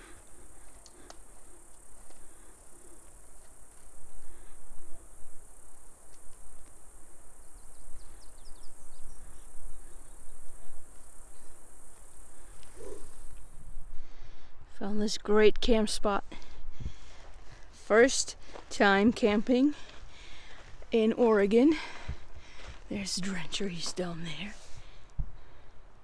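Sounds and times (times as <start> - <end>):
insects droning: 0.0 - 26.0.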